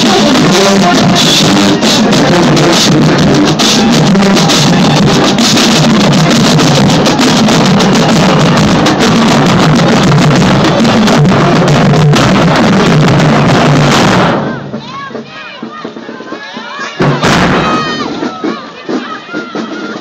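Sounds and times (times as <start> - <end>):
bass drums: 0.0 - 20.0
crowd voices: 0.0 - 20.0
marching band playing: 0.0 - 20.0.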